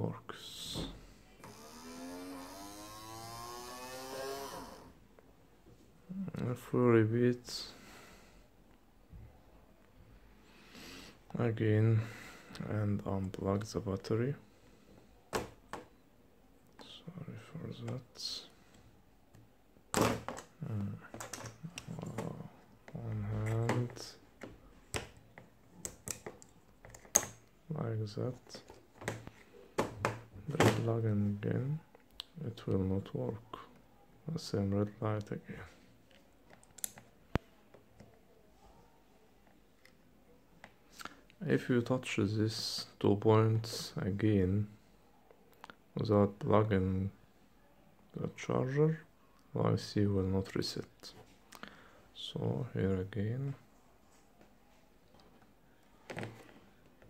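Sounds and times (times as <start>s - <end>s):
small motor whining: 1.4s - 4.9s.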